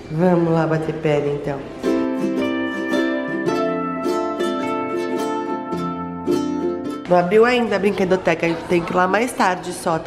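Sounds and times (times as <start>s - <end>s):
plucked string instrument music: 1.6s - 8.2s.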